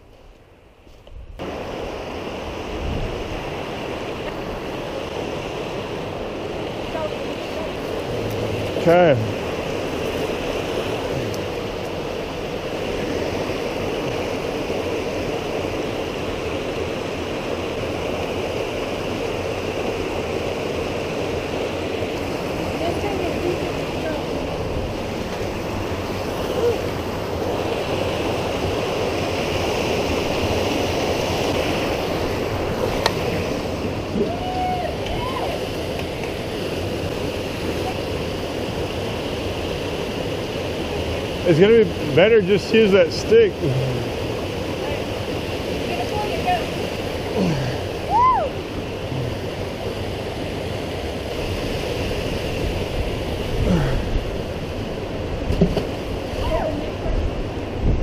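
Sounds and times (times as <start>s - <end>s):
creek rushing over rocks: 1.4s - 58.0s.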